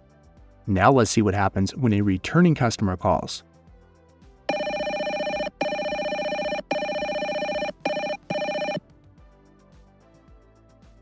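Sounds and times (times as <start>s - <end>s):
electronic phone ringtone: 4.5s - 8.8s.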